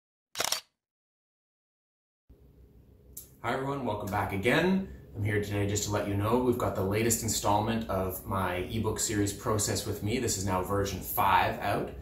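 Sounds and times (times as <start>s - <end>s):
camera shutter click-clack: 0.4s - 0.7s.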